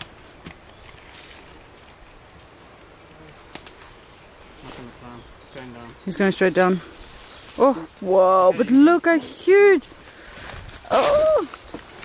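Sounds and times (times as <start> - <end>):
low steady forest hiss: 0.0 - 12.0.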